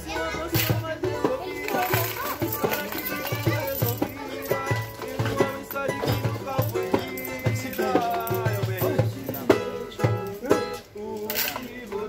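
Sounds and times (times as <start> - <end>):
hand drums samba beat: 0.0 - 10.9
strummed cavaquinho and guitar: 0.0 - 12.0.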